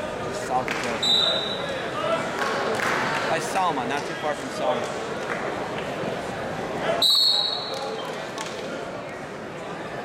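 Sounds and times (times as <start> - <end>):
crowd noise: 0.0 - 10.0
referee's whistle blast: 1.0 - 1.6, 7.0 - 7.7.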